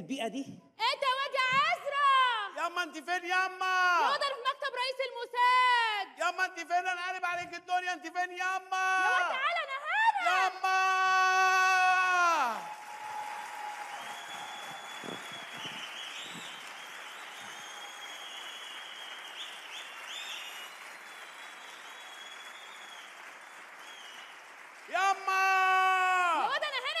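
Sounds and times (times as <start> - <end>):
man shouting: 8.1 - 12.6, 24.9 - 27.0
audience applause: 12.3 - 27.0.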